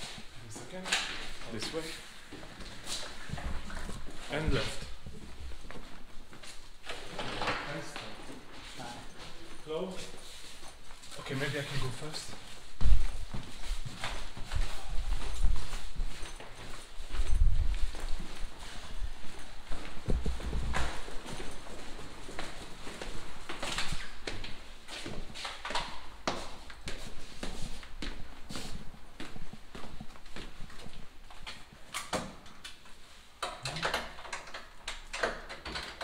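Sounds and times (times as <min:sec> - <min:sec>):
footsteps on hard floor: 0:00.0 - 0:07.2, 0:07.9 - 0:31.5.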